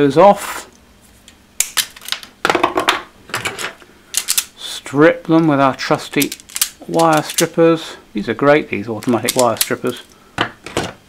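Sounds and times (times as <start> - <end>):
hand tools clicking and clattering: 3.4 - 4.5, 6.1 - 7.5, 9.0 - 10.1
side cutters snipping wire: 9.0 - 10.0.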